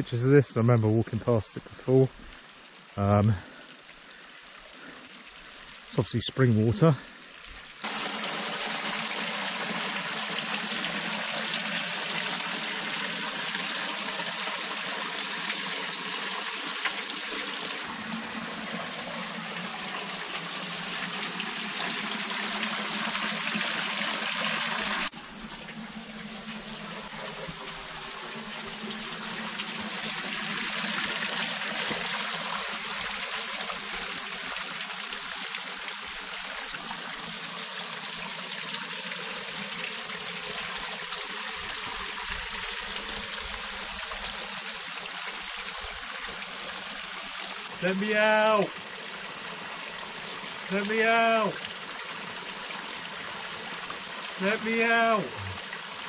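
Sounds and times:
water trickling and splashing: 0.0s - 56.0s.

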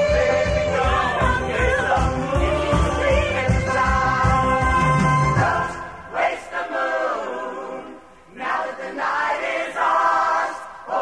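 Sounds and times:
ensemble singing together: 0.0s - 11.0s.

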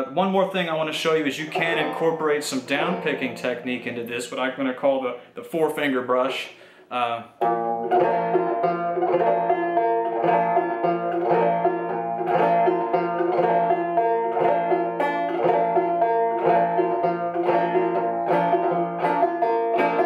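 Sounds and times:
banjo picking and brushing: 0.0s - 5.6s, 7.4s - 20.0s.

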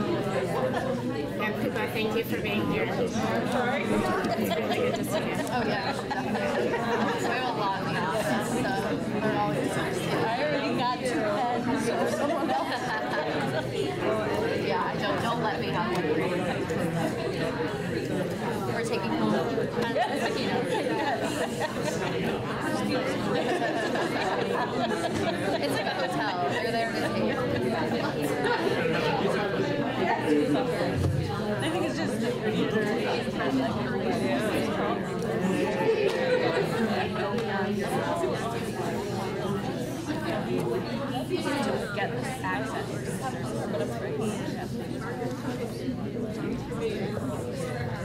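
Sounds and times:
hubbub of overlapping conversation: 0.0s - 48.0s.

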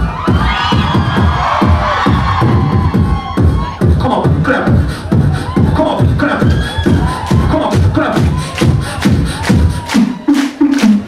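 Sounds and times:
beatboxing mouth bass beat: 0.0s - 11.0s
bright high beatbox sound: 7.6s - 11.0s.

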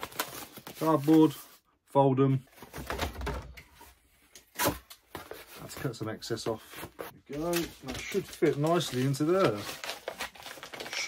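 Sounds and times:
cardboard cracking: 7.4s - 11.0s.

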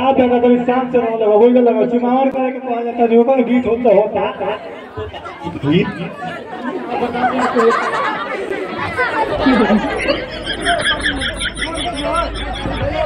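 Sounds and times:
people talking over each other: 0.0s - 13.0s.

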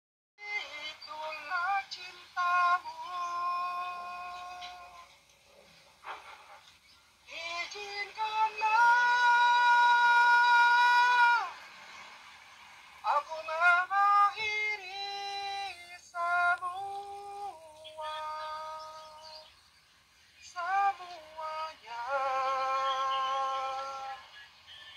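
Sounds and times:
robotic processed singing voice: 0.4s - 5.1s, 7.3s - 11.6s, 13.1s - 19.5s, 20.4s - 24.9s.

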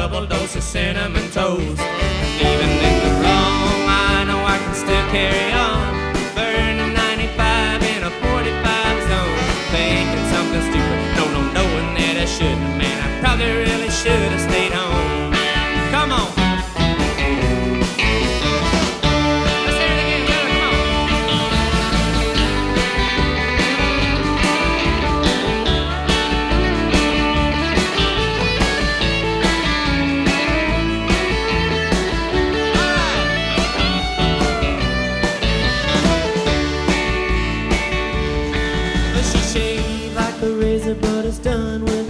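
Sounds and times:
steady drum beat: 0.0s - 42.0s
keyboard: 1.4s - 42.0s
electric guitar bending notes: 1.8s - 40.2s.

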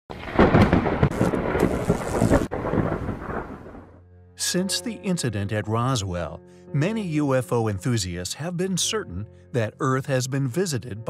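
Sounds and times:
crackling thunderclap and rumble: 0.1s - 4.0s.

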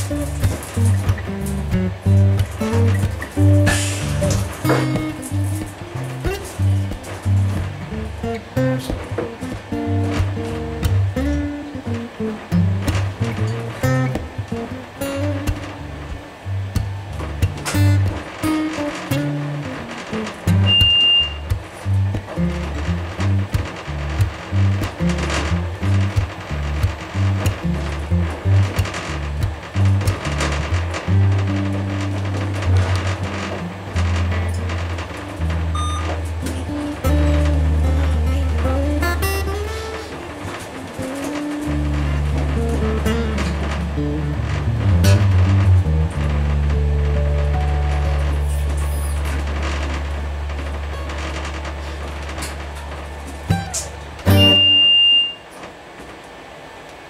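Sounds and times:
background music with bass: 0.0s - 54.9s
steady high tone: 54.3s - 55.4s.

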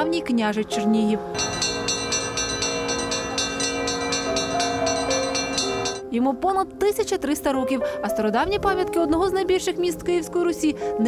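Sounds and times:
church bells ringing: 1.3s - 6.1s.

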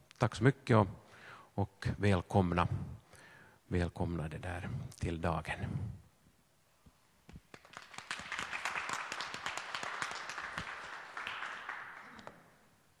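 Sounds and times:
audience applauding: 7.5s - 12.6s.

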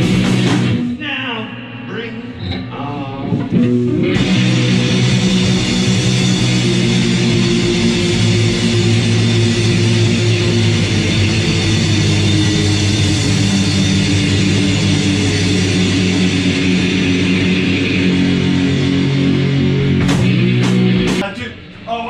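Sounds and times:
drum kit: 0.0s - 1.0s, 3.3s - 21.6s
electric guitars: 0.0s - 1.0s, 2.3s - 21.2s.

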